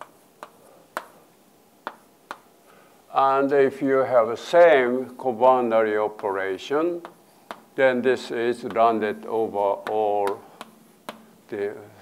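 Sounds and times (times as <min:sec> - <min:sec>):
chalk tapping on blackboard: 0:00.0 - 0:02.6, 0:05.6 - 0:11.5.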